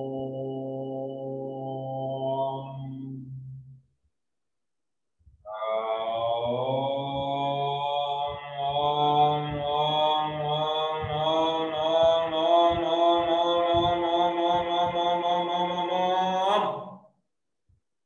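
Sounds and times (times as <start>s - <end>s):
man chanting a held tone: 5.5s - 17.0s.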